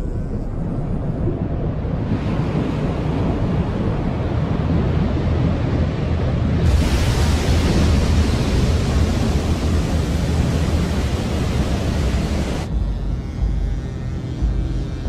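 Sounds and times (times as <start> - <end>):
low rumble: 0.0 - 15.0
ocean wave breaking: 1.3 - 12.7
music: 12.6 - 15.0.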